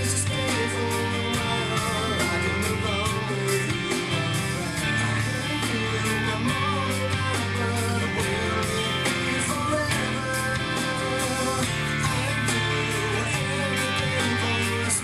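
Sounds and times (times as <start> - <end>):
electric guitar hard rock: 0.0 - 15.0.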